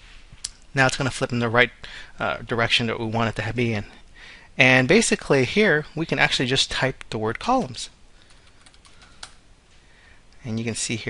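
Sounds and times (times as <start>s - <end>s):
typing on computer keyboard: 8.3s - 9.4s.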